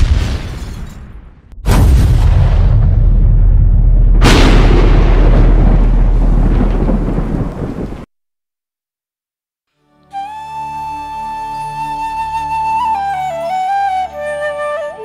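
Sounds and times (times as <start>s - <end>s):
thunderclap: 0.0s - 8.1s
rolling thunder rumble: 1.6s - 8.1s.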